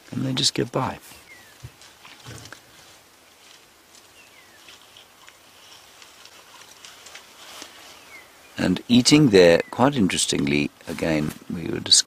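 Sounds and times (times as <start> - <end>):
leaves rustling: 0.0 - 12.0
elephants chewing: 1.1 - 8.5.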